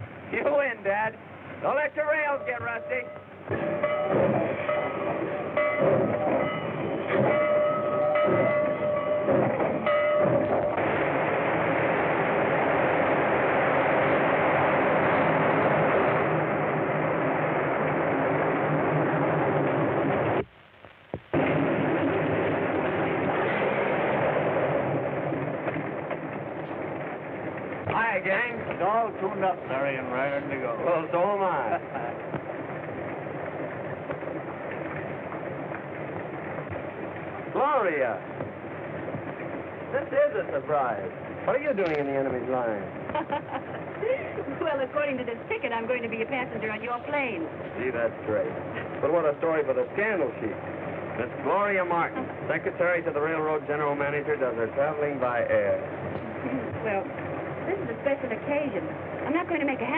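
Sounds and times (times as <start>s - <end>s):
steam locomotive running: 0.0s - 20.5s, 21.3s - 59.9s
steam locomotive whistle chord: 2.3s - 10.8s.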